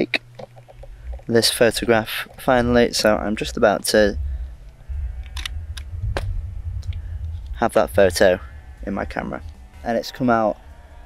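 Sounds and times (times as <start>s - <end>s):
wind rumbling on microphone: 0.4s - 10.8s.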